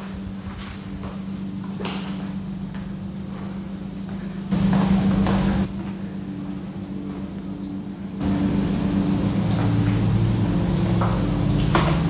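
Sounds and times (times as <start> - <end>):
low machine hum: 0.0 - 12.0.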